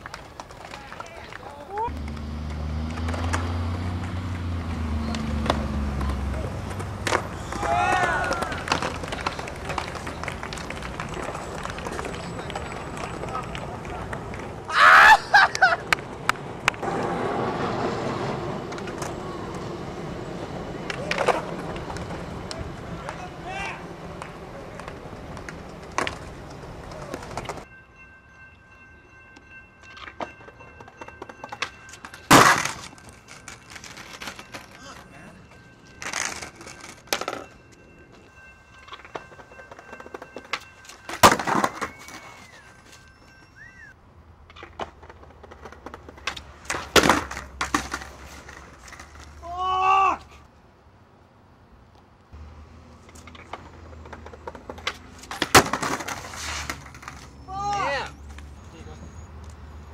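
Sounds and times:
skateboard cracking on concrete: 0.0 - 2.2, 5.4 - 14.5, 16.3 - 19.7, 20.8 - 23.2, 32.3 - 34.7, 40.5 - 42.5, 44.5 - 49.4, 53.2 - 57.3
crowd walking and talking: 5.0 - 14.7.

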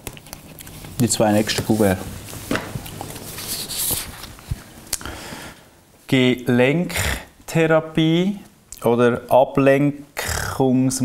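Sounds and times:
paper rustling: 0.0 - 4.8.

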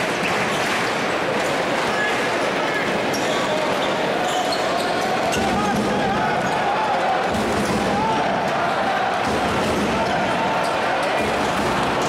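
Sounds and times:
arena crowd voices: 0.0 - 12.0.

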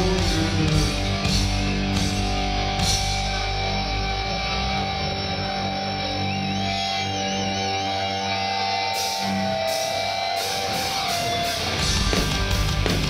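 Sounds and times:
bass guitar notes: 0.0 - 13.0
distorted electric guitars: 0.0 - 13.0.

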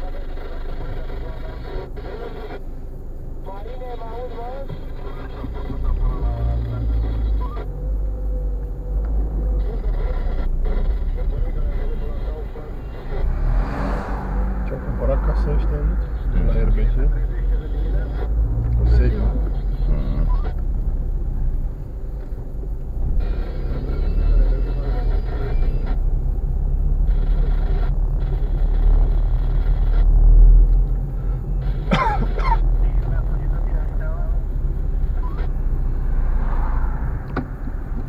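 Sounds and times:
people talking: 0.0 - 2.6, 3.4 - 7.8, 9.6 - 20.6, 23.2 - 26.0, 31.9 - 35.6
car engine and tyres rumbling: 0.0 - 38.0.

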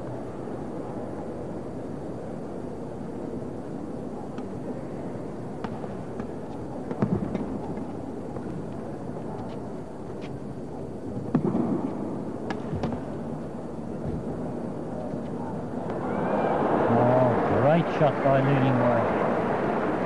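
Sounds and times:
indoor crowd murmur: 13.5 - 20.0.

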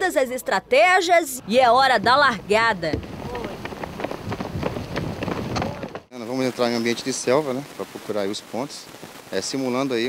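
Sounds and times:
people running in boots on asphalt: 2.8 - 6.1.

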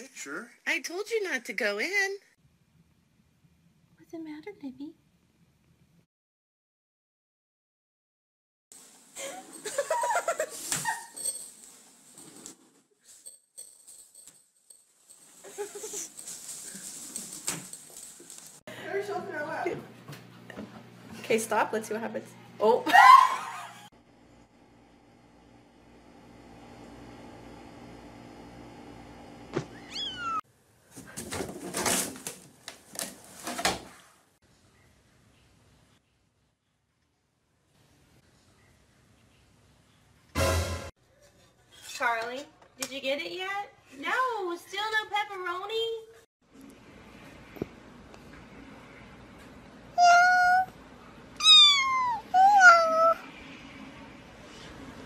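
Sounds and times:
person laughing: 9.2 - 11.2, 15.5 - 16.2, 22.8 - 23.9
rustling noise: 10.2 - 18.7
kitten meowing: 29.8 - 30.4, 50.0 - 50.7, 51.4 - 53.2.

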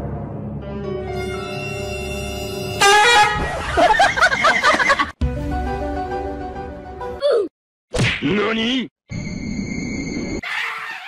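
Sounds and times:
background music: 0.0 - 7.4
loud horn-like blast: 1.1 - 3.5.

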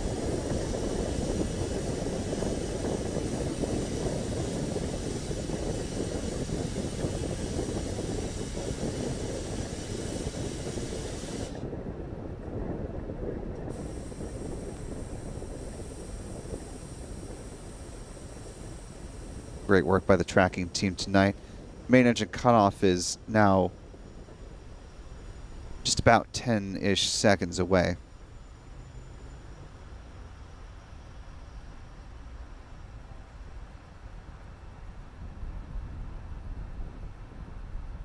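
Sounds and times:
distant rocket engine rumble: 0.0 - 38.0.

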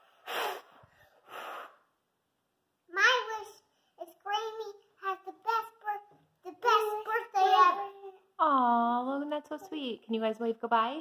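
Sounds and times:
children blowing out candles: 0.0 - 1.9.

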